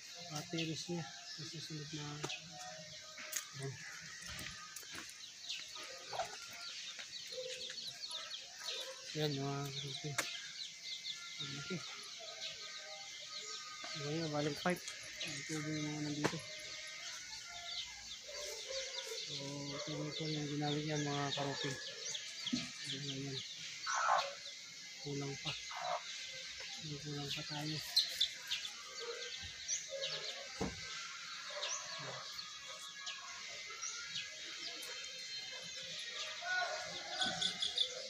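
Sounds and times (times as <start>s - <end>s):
small birds chirping: 0.0s - 38.0s.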